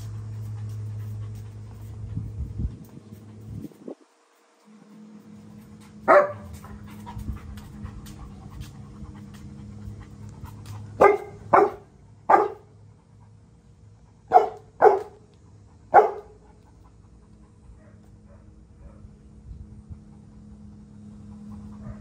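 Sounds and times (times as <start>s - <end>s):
dog panting: 0.0s - 19.1s, 19.8s - 22.0s
dog barking: 6.1s - 6.5s, 11.0s - 12.7s, 14.3s - 15.2s, 15.9s - 16.4s.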